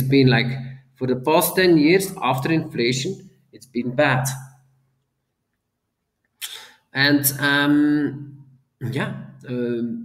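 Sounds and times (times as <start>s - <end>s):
man speaking: 0.0s - 4.6s, 6.4s - 10.0s
man's sharp breath: 6.4s - 6.9s.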